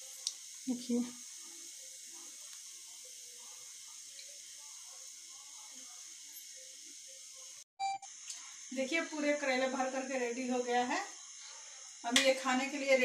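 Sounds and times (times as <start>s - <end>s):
faint indistinct voices: 0.0s - 7.6s
steady hiss: 0.0s - 13.0s.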